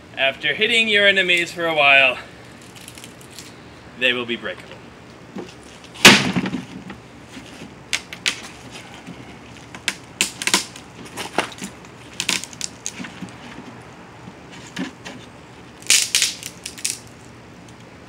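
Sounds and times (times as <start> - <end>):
wooden stick snapping: 7.9 - 8.4, 15.8 - 17.1.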